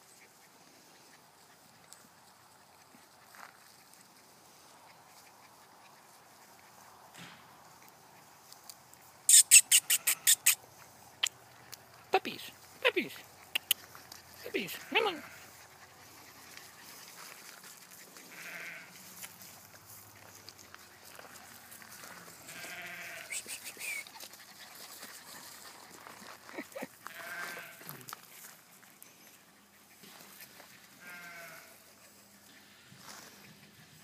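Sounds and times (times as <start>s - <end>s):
puppy whining: 9.3s - 10.6s.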